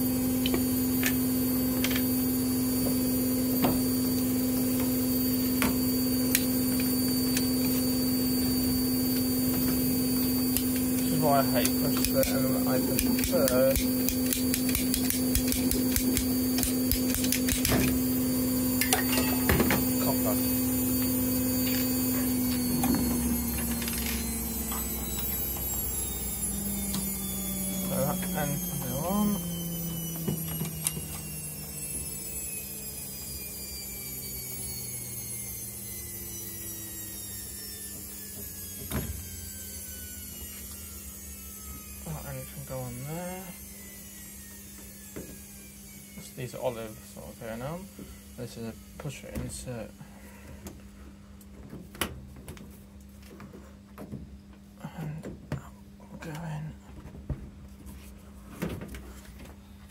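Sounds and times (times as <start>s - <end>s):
washing machine motor whine: 0.0s - 59.9s.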